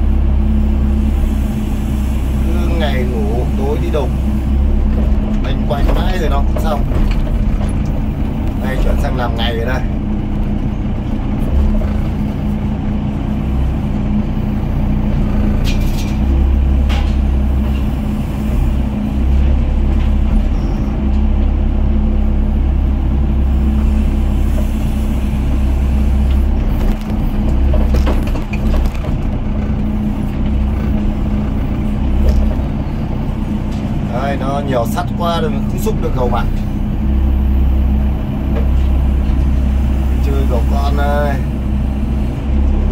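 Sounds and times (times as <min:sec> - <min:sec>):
excavator diesel engine droning: 0:00.0 - 0:42.9.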